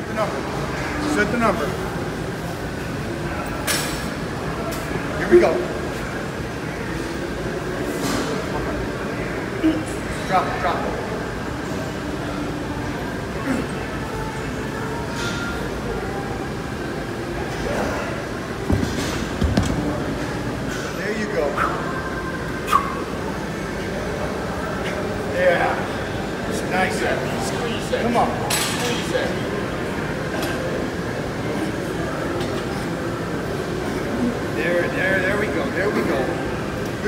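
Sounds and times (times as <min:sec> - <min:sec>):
faint voices: 0:00.0 - 0:37.0
gym room noise: 0:00.0 - 0:37.0.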